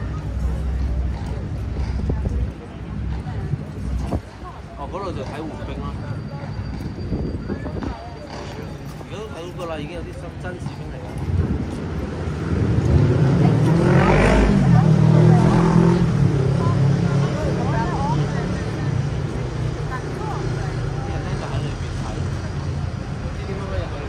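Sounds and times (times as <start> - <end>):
vehicle engine passing by: 11.3 - 24.0.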